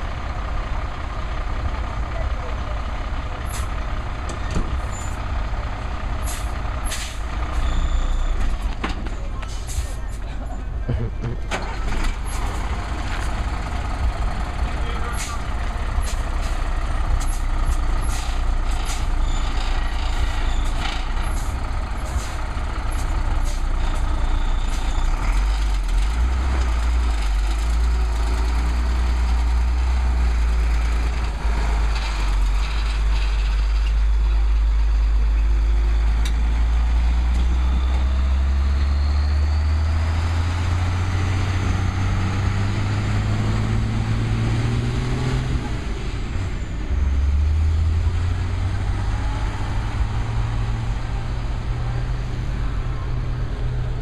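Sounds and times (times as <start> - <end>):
diesel truck engine: 0.0 - 54.0.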